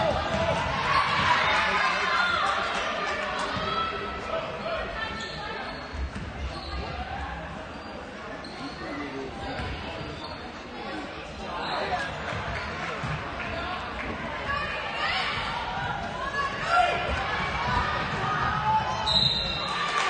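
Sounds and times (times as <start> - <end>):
voices of players and crowd: 0.0 - 20.0.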